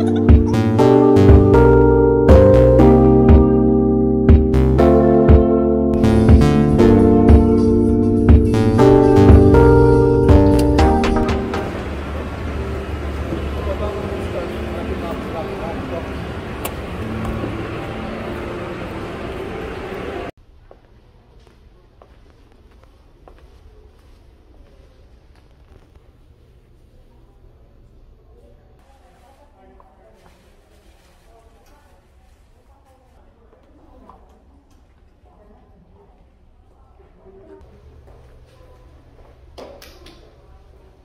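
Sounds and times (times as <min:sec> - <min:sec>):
escalator rumbling: 0:06.0 - 0:20.3
mall hubbub: 0:06.7 - 0:41.0
faint voices: 0:11.4 - 0:20.3.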